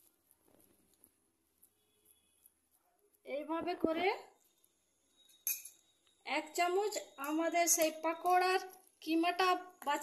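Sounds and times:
kitchenware clinking: 5.2s - 6.0s.

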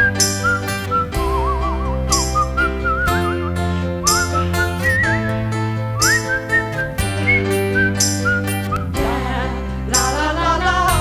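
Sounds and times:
person whistling a melody: 0.0s - 9.0s
band with guitar bass and drums: 0.0s - 10.2s.

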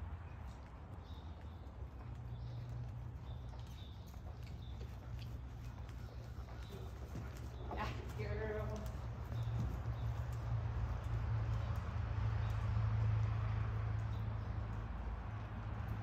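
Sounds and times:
horse hoofbeats trotting on sand: 0.0s - 16.0s.

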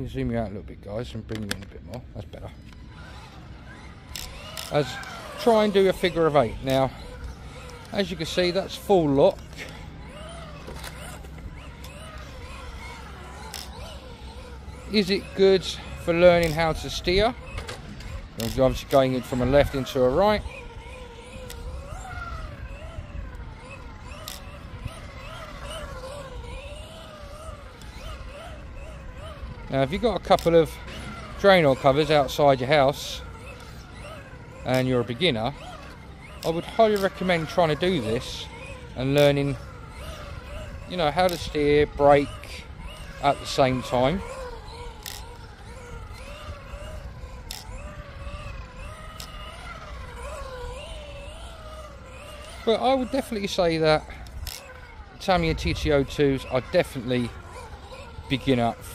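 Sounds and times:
low steady rumble: 0.0s - 58.9s
radio-control car motor whining: 0.0s - 58.9s.

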